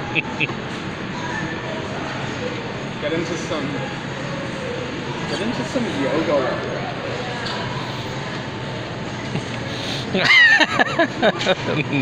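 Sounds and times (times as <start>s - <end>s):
store background hum and hiss: 0.0s - 12.0s.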